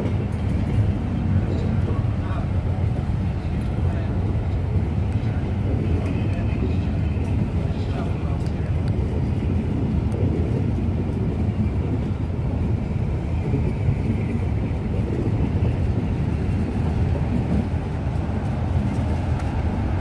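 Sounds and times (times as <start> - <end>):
train coaches rumbling past: 0.0 - 20.0.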